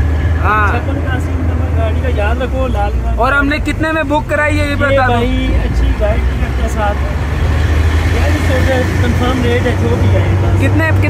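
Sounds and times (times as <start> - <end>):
voices talking: 0.2 - 11.0.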